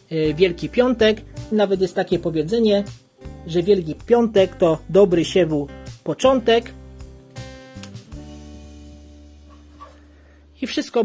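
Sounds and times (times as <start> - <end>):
plucked guitar notes: 0.4 - 10.2.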